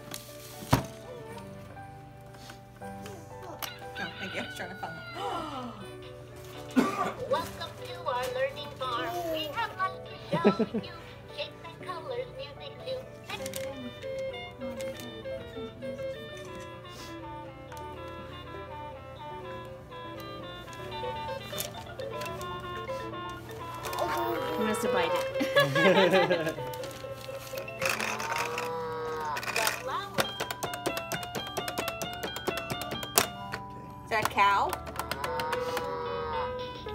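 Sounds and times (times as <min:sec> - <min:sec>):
jingly toy melody: 0:11.6 - 0:36.9.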